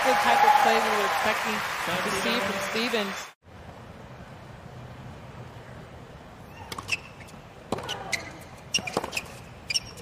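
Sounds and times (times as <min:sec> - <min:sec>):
hushed stadium ambience: 0:00.0 - 0:10.0
racket hitting ball: 0:08.8 - 0:09.4.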